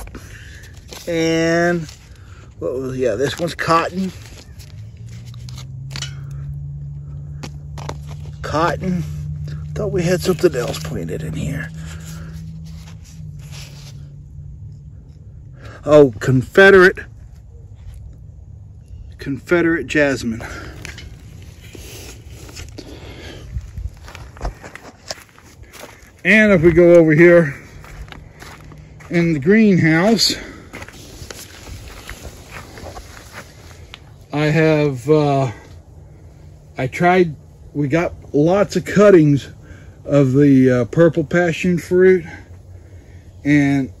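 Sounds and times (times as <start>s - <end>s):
footsteps on wood-chip mulch: 0.0s - 6.0s, 7.2s - 14.2s, 20.2s - 34.2s
steady low hum: 0.0s - 44.0s
wind rumble on microphone: 20.8s - 25.8s.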